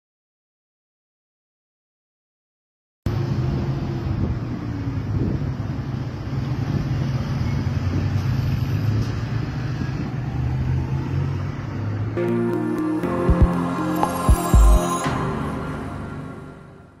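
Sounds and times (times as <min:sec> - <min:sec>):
street traffic hum: 0:03.1 - 0:12.2.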